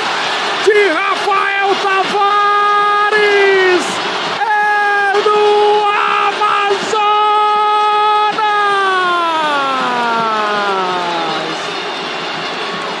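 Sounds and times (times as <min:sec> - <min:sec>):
stadium crowd noise: 0:00.0 - 0:13.0
narrator's long goal cry: 0:04.5 - 0:11.7.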